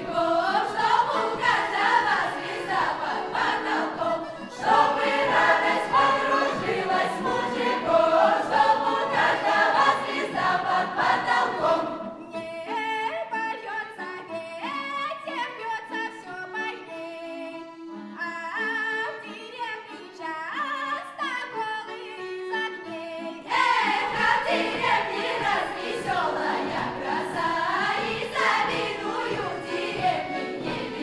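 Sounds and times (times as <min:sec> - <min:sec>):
folk choir singing: 0:00.0 - 0:14.0, 0:22.9 - 0:31.0.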